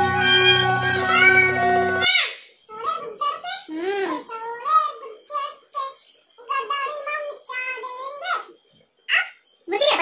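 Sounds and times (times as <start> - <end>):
boy singing unaccompanied: 0.0 - 8.5.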